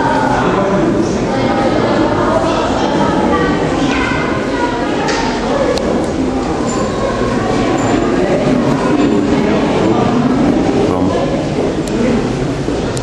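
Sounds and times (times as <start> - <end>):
indistinct voices: 0.0 - 13.0
loud background din: 0.0 - 13.0.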